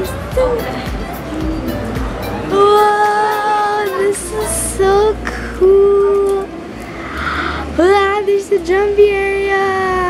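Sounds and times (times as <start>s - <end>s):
music with high voice singing: 0.0s - 6.8s.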